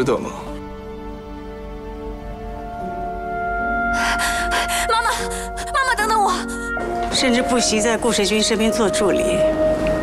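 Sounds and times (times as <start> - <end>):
soft background music: 0.0 - 10.0
woman crying out: 4.0 - 6.8.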